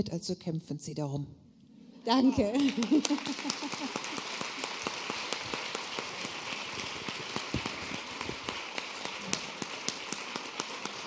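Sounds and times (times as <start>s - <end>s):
audience applauding: 2.4s - 11.0s.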